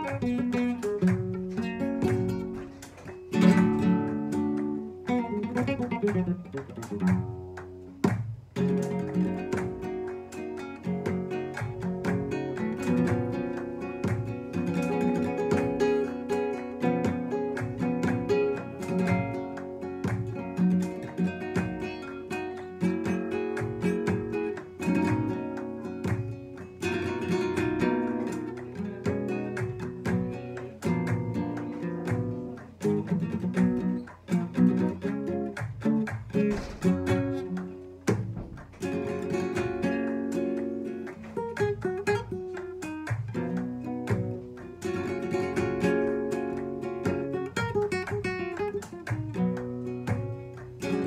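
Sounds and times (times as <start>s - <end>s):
flamenco guitar playing: 0.0s - 51.0s.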